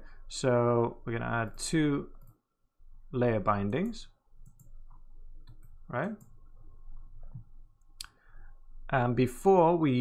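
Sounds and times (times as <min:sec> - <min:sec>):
computer mouse clicks: 0:03.7 - 0:06.4.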